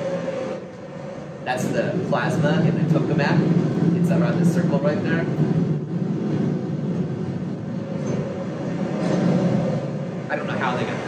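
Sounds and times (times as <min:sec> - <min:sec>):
low rumble with hum: 0:00.0 - 0:11.0.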